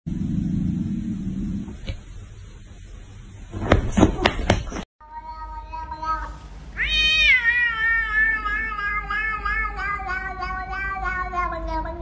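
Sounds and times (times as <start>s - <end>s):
cat meowing: 5.0s - 12.0s.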